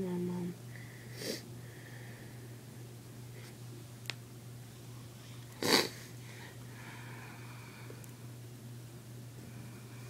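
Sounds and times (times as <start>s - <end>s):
breathy nasal intake: 5.6s - 7.4s.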